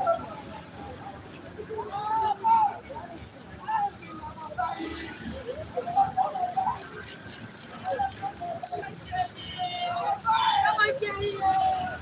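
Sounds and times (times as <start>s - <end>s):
people talking indistinctly: 0.0s - 12.0s
steady high-pitched whine: 0.0s - 12.0s.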